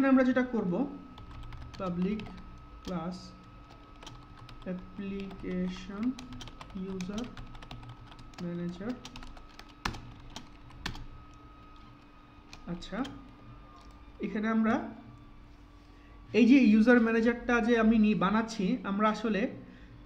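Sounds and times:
computer keyboard typing: 0:01.1 - 0:14.0.

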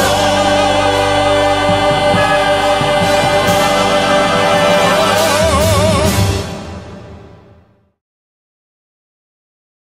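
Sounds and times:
choir singing gospel chord: 0:00.0 - 0:06.8.

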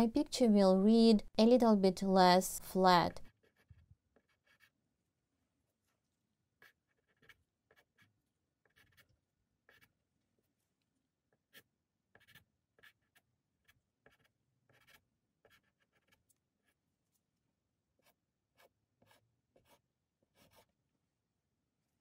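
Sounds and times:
pastel scratching on paper: 0:03.2 - 0:05.0, 0:05.7 - 0:10.6, 0:11.3 - 0:17.3, 0:17.9 - 0:20.8.

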